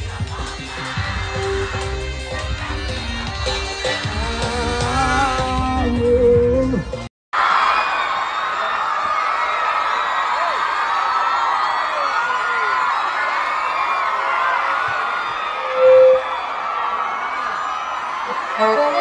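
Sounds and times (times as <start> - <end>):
crowd cheering and shouting: 0.0 - 19.0
brief loud tone: 15.6 - 16.4.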